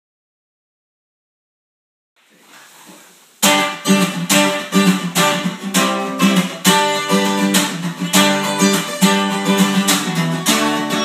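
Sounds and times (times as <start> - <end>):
faint room hiss: 2.2 - 11.0
acoustic guitars strumming: 3.4 - 11.0.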